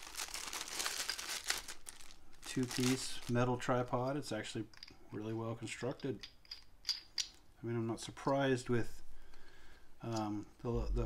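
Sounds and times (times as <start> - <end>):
plastic bag crinkling: 0.0 - 3.9.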